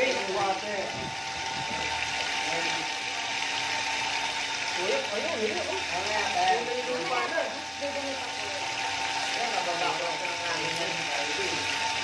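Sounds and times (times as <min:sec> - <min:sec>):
pump humming: 0:00.0 - 0:12.0.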